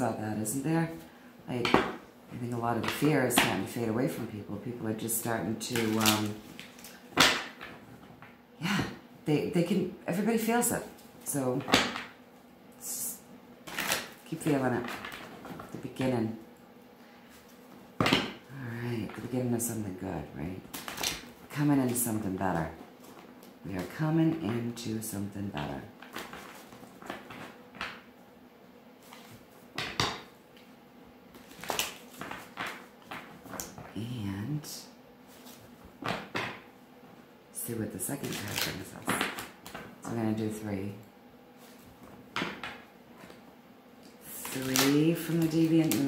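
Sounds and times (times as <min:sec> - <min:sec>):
cards being shuffled: 0:05.7 - 0:07.8, 0:29.0 - 0:30.3, 0:31.3 - 0:33.9.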